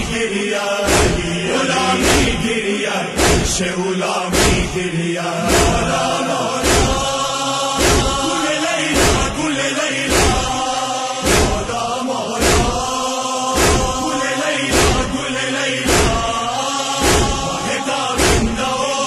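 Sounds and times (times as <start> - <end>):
men chanting in unison: 0.0 - 19.0
chest-beating thumps: 0.8 - 1.4, 2.0 - 2.6, 3.2 - 3.7, 4.3 - 4.8, 5.5 - 9.4, 10.0 - 11.8, 12.4 - 13.0, 13.6 - 14.1, 14.7 - 15.2, 15.8 - 16.4, 17.0 - 17.6, 18.2 - 18.7.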